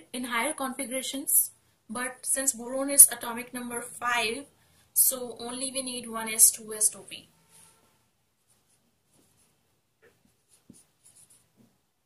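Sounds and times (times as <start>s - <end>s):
marker writing on a whiteboard: 7.4s - 11.8s.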